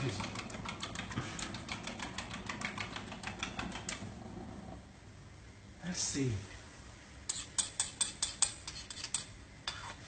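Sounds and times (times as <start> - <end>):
fork beating eggs in a plate: 0.0 - 4.1, 7.3 - 10.0.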